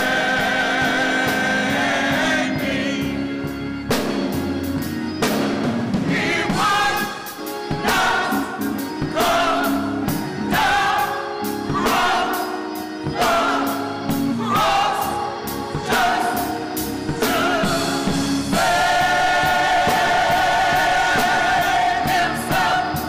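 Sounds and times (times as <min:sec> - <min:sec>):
drum kit: 0:00.0 - 0:23.0
gospel group singing in harmony: 0:00.0 - 0:23.0
organ: 0:00.0 - 0:23.0.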